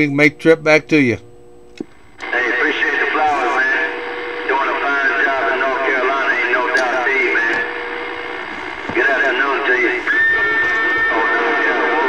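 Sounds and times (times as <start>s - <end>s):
voice over cb radio: 2.2s - 12.0s.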